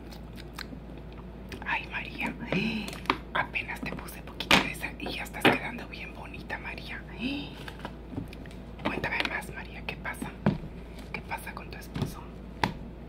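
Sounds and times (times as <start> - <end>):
woman whispering: 1.6 - 7.6, 8.8 - 10.4, 11.1 - 12.3.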